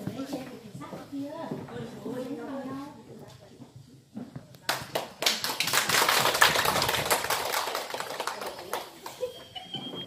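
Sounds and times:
audience applauding: 0:04.9 - 0:09.4.

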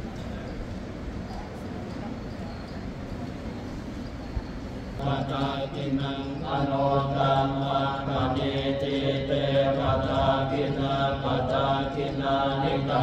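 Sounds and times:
murmuring hall background: 0:00.0 - 0:13.0
low drawn-out chanting: 0:05.0 - 0:13.0.

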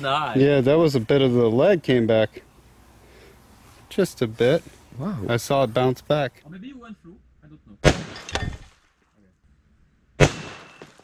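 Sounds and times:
handgun shots: 0:10.2 - 0:11.0.

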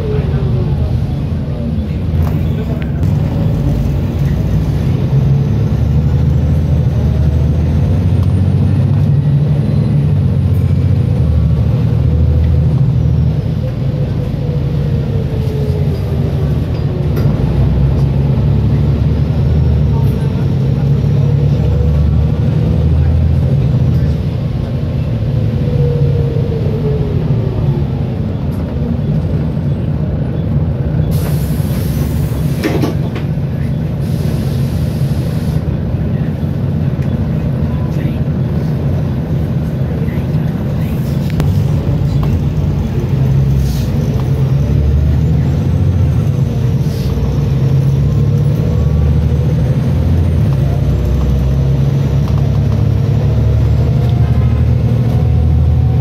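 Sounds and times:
bus diesel engine running: 0:00.0 - 0:56.0
air brake hiss: 0:31.1 - 0:32.7.

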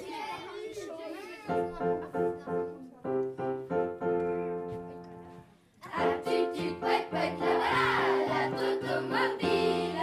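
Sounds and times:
piano chords: 0:01.5 - 0:05.3, 0:05.9 - 0:10.0
choir singing: 0:05.8 - 0:10.0.

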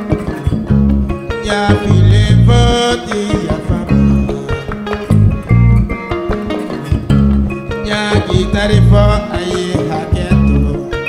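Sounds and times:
bass guitar: 0:00.0 - 0:11.0
plucked ngoni lines: 0:00.0 - 0:11.0
hand percussion: 0:01.3 - 0:11.0.

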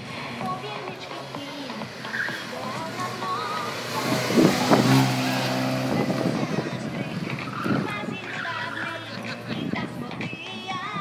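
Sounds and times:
car engine revving hard: 0:01.8 - 0:09.7.

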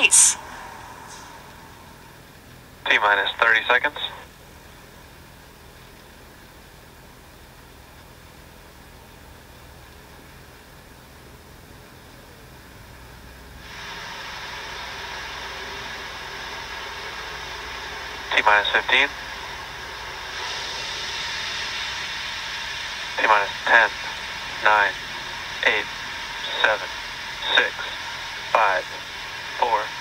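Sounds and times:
steady background hiss: 0:00.0 - 0:30.0.

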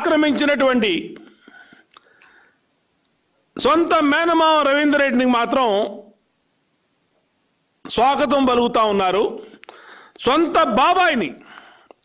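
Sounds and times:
man speaking: 0:00.0 - 0:01.3, 0:03.6 - 0:06.1, 0:07.8 - 0:09.6, 0:10.2 - 0:11.4
mouth clicks: 0:01.7 - 0:02.3.

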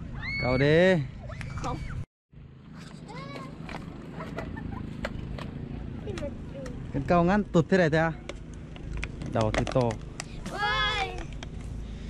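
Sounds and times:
low steady outdoor background: 0:00.0 - 0:12.0.

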